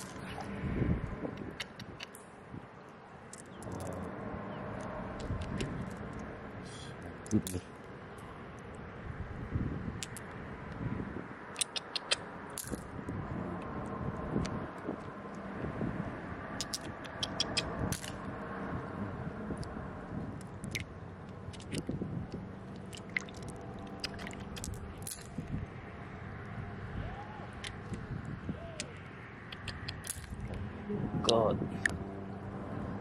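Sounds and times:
rush of noise: 0.0 - 2.7
small sharp clicks: 1.3 - 2.3, 10.0 - 10.8, 11.5 - 12.9, 16.6 - 18.3, 20.4 - 25.4, 28.8 - 30.4
stones clicking together in water: 22.8 - 25.3.

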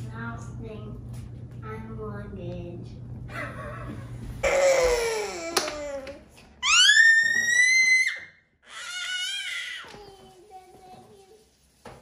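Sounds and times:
child wailing cry: 4.4 - 9.9
child high-pitched shriek: 6.6 - 10.0.

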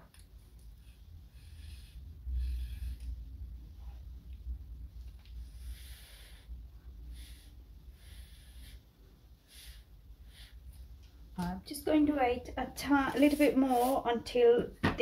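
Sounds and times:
low steady rumble: 0.0 - 14.5.

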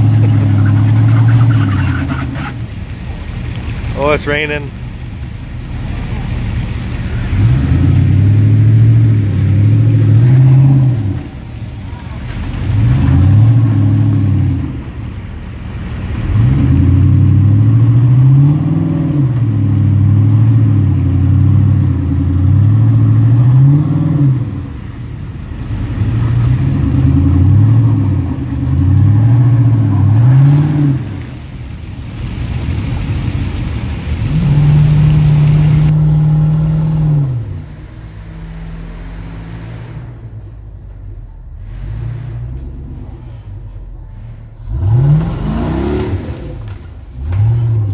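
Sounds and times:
engine revving hard: 44.6 - 47.9.

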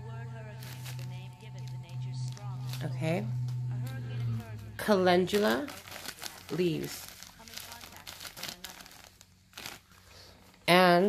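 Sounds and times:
plastic bag crinkling: 0.6 - 1.7, 5.2 - 10.6.

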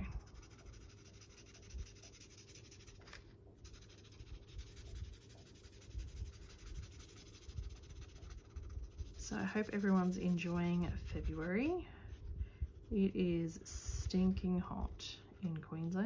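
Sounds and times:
marker scratching on paper: 0.0 - 13.6.

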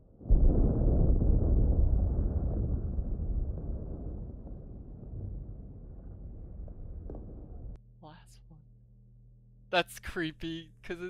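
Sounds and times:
distant explosion boom and rumble: 0.0 - 7.8.

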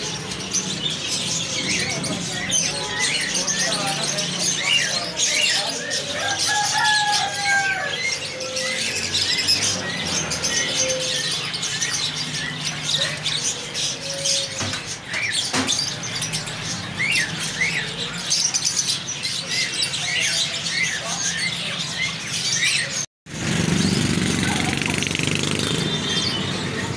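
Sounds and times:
cage birds chirping: 0.0 - 26.9.

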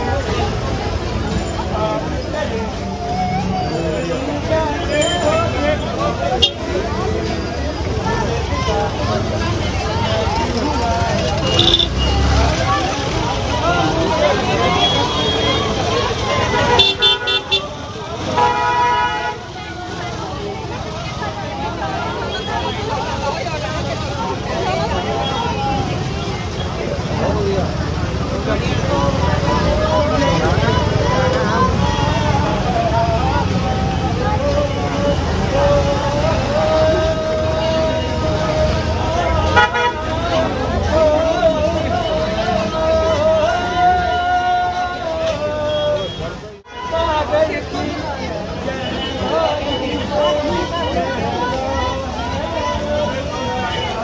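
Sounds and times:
crowd chatter: 0.0 - 54.0
vehicle horn beeping: 6.4 - 6.7, 11.4 - 12.3, 14.6 - 19.4, 39.5 - 40.1.

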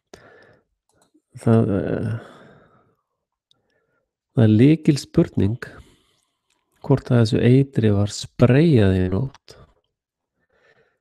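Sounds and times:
exhaled breath: 0.1 - 0.7, 10.4 - 11.0.

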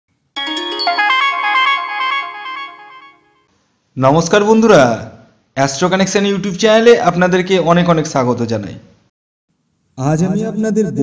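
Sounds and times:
electronic chime jingle: 0.4 - 3.5.

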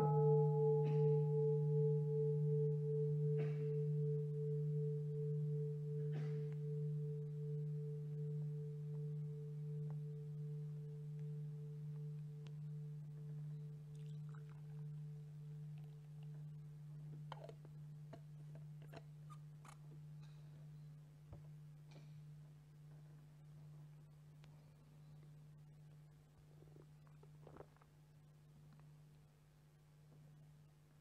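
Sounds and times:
meditation bell ringing: 0.0 - 15.8.

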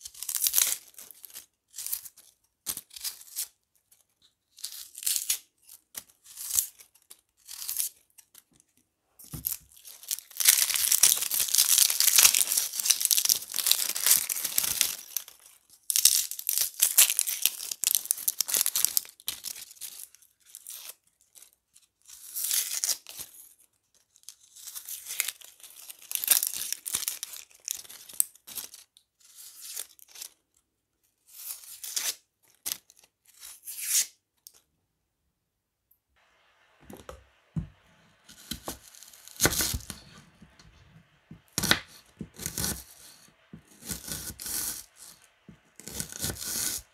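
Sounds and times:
onion skins crackling and tearing: 0.0 - 3.5, 9.4 - 21.5, 24.1 - 30.4, 38.2 - 46.9.

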